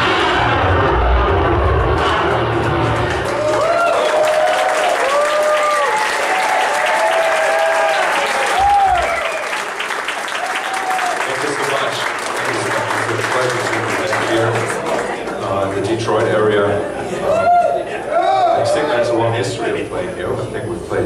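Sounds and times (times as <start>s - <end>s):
audience applauding and cheering: 1.9s - 16.4s.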